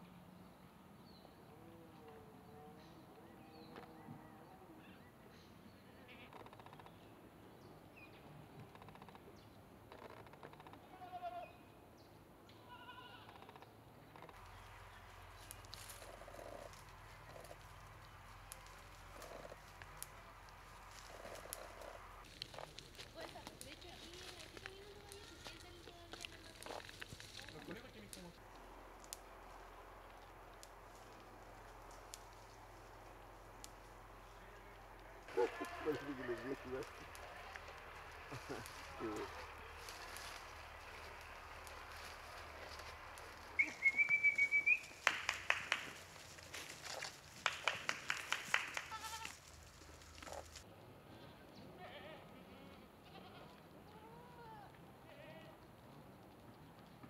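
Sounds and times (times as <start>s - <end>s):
goats bleating: 12.7s - 13.3s, 35.3s - 41.0s, 48.9s - 49.4s
twigs crackling and snapping: 14.3s - 50.6s.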